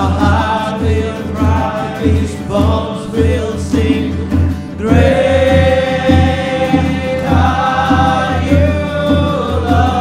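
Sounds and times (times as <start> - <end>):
group worship singing: 0.0 - 10.0.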